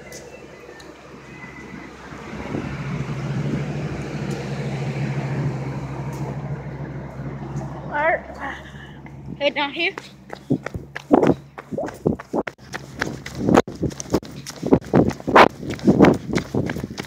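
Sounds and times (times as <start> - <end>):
engine rumbling: 0.0 - 17.0.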